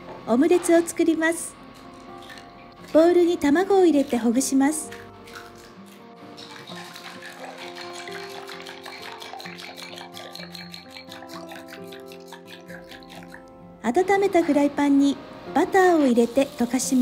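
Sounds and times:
soft background music: 0.0s - 17.0s
chopsticks beating eggs in glass bowl: 4.0s - 13.5s.

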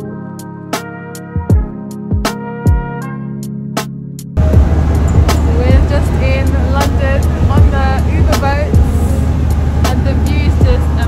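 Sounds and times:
boat engine rumble: 4.4s - 11.0s
wind buffeting microphone: 4.4s - 11.0s
people talking: 5.4s - 9.3s, 9.9s - 11.0s.

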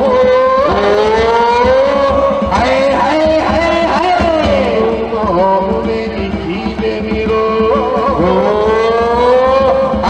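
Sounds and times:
person singing a long note: 0.0s - 10.0s.

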